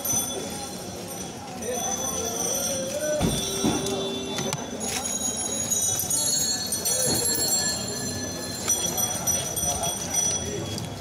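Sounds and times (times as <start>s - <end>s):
voices in background: 0.0s - 11.0s.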